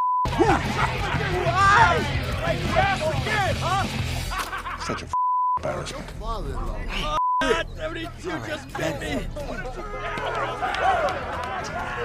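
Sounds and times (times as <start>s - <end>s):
men cheering: 0.3s - 4.3s, 8.8s - 12.0s.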